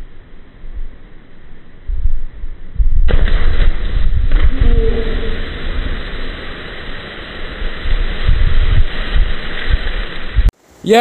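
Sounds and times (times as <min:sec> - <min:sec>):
wind buffeting microphone: 0:00.6 - 0:10.5
water splashing: 0:03.1 - 0:10.8.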